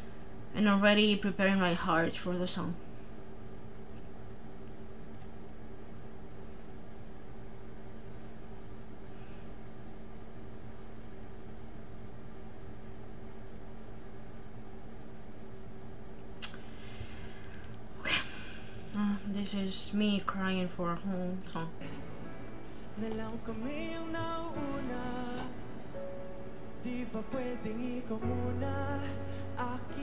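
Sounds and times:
electrical hum: 0.0 - 30.0
soft hiss: 2.2 - 30.0.

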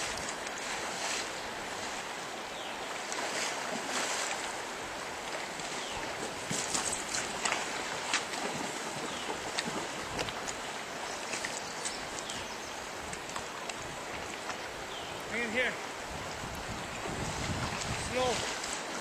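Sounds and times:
river rushing over gravel: 0.0 - 19.0
water splashing: 2.8 - 19.0.

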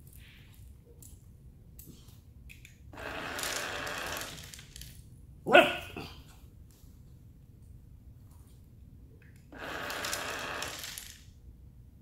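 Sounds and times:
puppy barking sharply: 5.5 - 6.1.

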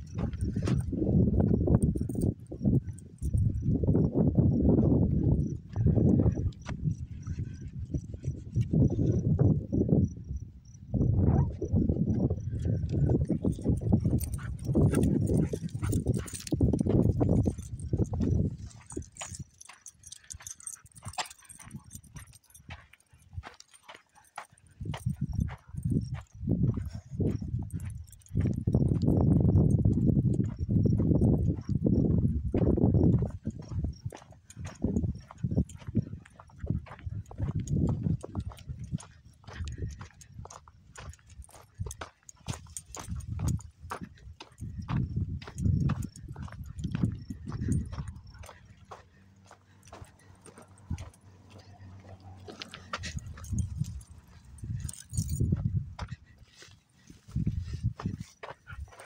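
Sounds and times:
footsteps crunching on dirt: 0.0 - 3.8, 12.0 - 59.0.

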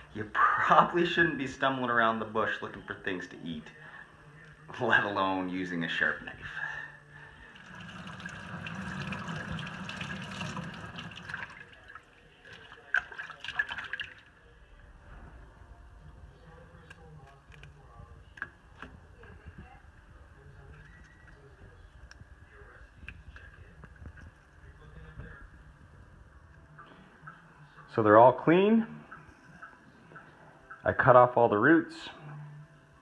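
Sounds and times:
tap water running and splashing: 7.5 - 14.2.

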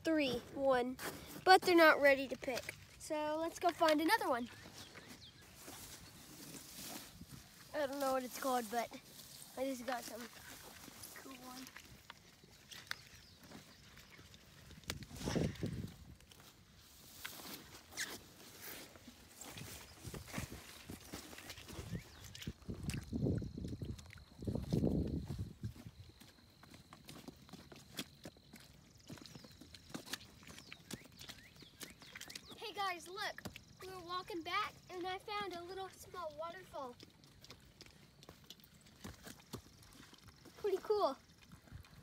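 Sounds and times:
footsteps through wet grass and mud: 0.0 - 42.0.

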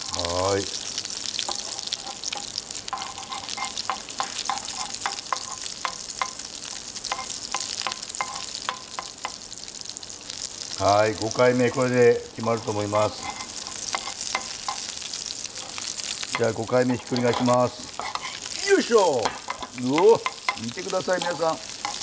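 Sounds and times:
meat sizzling in a frying pan: 0.0 - 22.0.

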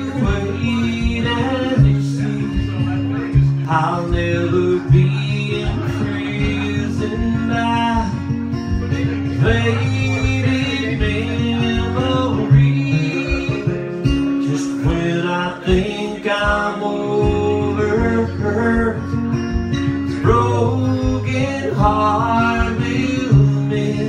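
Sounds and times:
acoustic guitar strumming: 0.0 - 24.0
man singing: 0.0 - 24.0.

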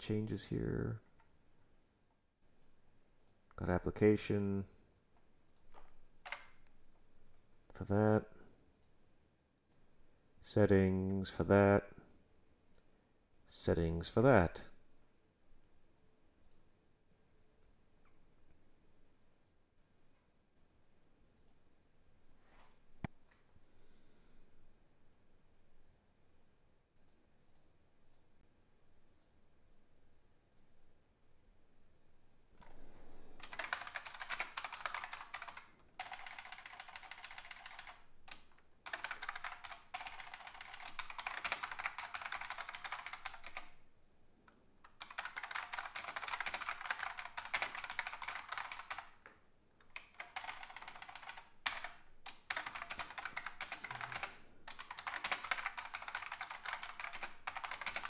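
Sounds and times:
fast typing on keyboard: 5.5 - 6.6, 33.4 - 43.8, 44.9 - 49.2, 49.8 - 58.0.

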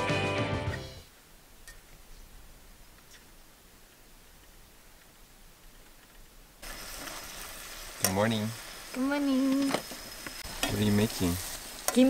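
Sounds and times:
faint background hiss: 0.8 - 12.0
food sizzling in a pan: 6.6 - 12.0.

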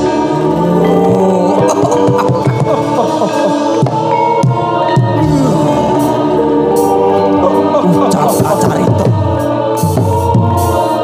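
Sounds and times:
ensemble of sustained pitched instruments: 0.0 - 11.0
person singing: 0.0 - 11.0.

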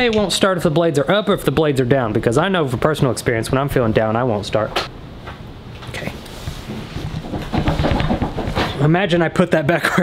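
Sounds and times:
man speaking: 0.0 - 4.9.

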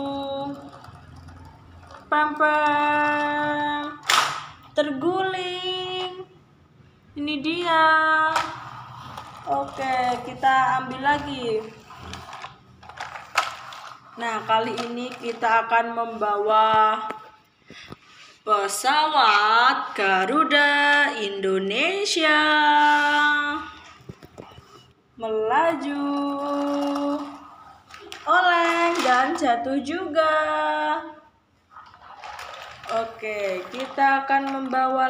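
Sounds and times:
plastic toy vehicles rattling: 0.0 - 4.8, 7.9 - 16.5, 25.8 - 29.7, 31.8 - 35.0.

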